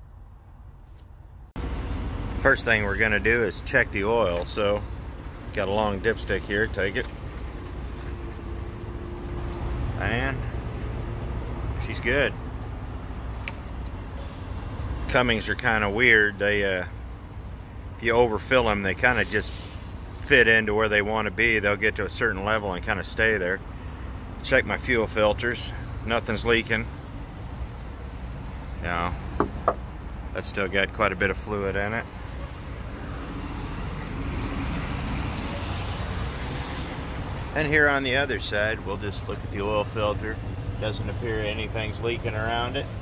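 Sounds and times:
diesel truck engine idling: 1.6s - 43.0s.

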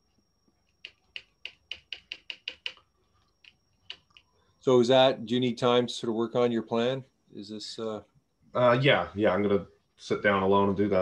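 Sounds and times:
computer keyboard keystrokes: 0.7s - 2.8s.

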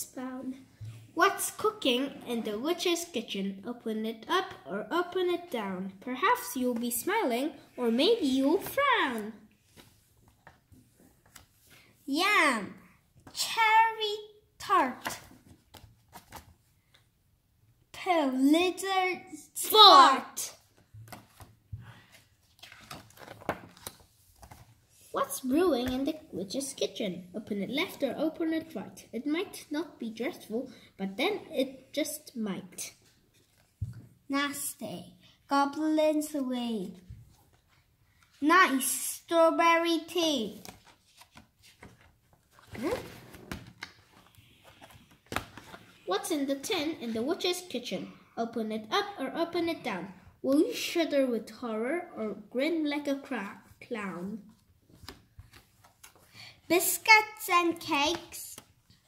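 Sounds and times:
page turning: 8.2s - 11.9s, 14.9s - 17.0s, 20.7s - 24.8s, 40.5s - 46.0s, 54.9s - 56.4s
paper pages rustling: 8.2s - 11.9s, 14.8s - 16.7s, 20.5s - 26.2s, 33.0s - 33.9s, 40.4s - 46.0s, 54.5s - 58.9s
papery rustle of card flap: 22.5s - 24.7s.

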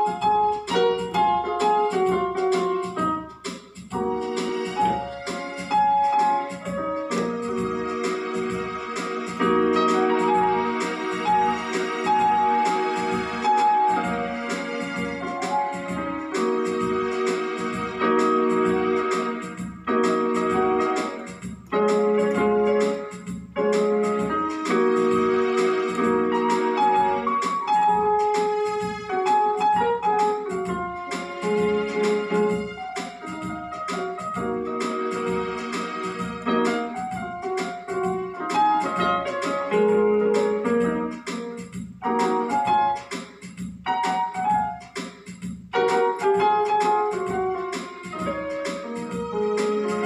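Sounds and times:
electronic keyboard melody: 0.0s - 50.0s.

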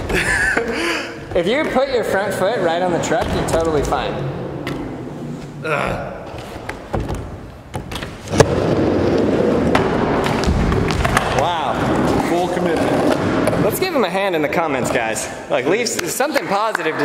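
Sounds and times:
skateboard wheels rolling on wood: 6.3s - 13.8s.

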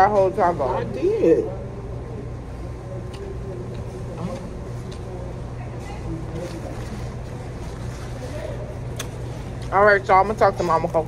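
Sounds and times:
faint voices: 0.0s - 11.0s
steady low hum: 0.0s - 11.0s.

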